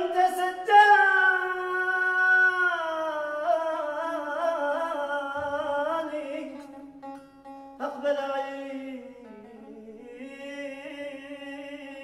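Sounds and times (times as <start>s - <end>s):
man singing solo: 0.0s - 6.8s.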